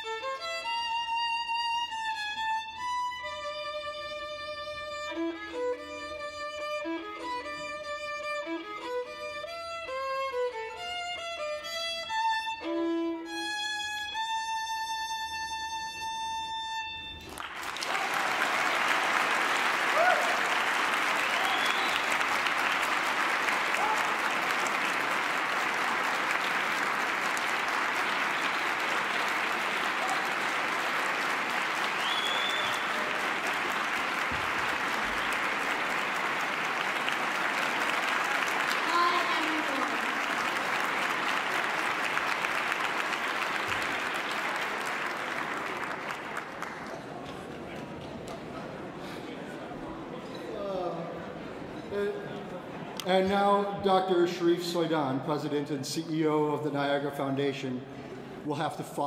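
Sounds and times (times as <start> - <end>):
audience applause: 17.2 - 49.7
cheers: 17.4 - 46.7.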